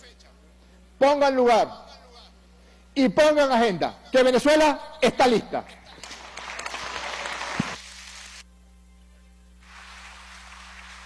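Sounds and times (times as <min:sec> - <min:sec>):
legislators applauding: 0:05.9 - 0:08.4, 0:09.7 - 0:11.0.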